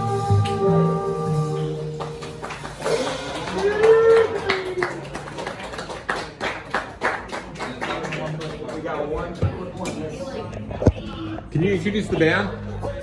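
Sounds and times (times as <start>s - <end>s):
jazz tune: 0.0s - 4.2s
audience clapping and cheering: 1.6s - 9.2s
long whoop: 2.9s - 5.0s.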